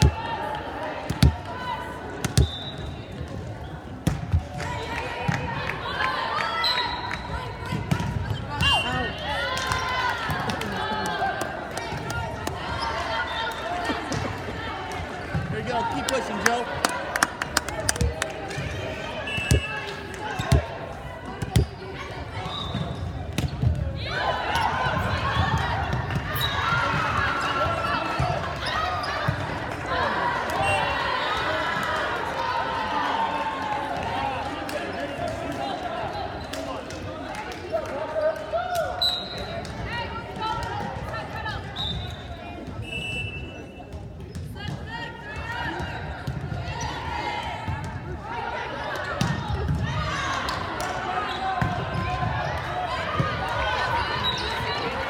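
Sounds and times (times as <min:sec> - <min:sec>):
crowd shouting and cheering: 0:00.0 - 0:55.0
ball hits and bounces: 0:01.0 - 0:01.5, 0:19.4 - 0:19.8, 0:20.4 - 0:21.8
sneaker squeaks: 0:02.2 - 0:04.1, 0:19.0 - 0:20.8, 0:21.4 - 0:23.9, 0:39.0 - 0:39.7, 0:54.1 - 0:54.9.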